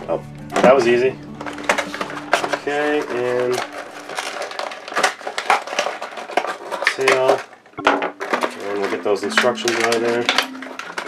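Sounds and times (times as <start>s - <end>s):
packaging crinkling and rustling: 0.0s - 11.0s.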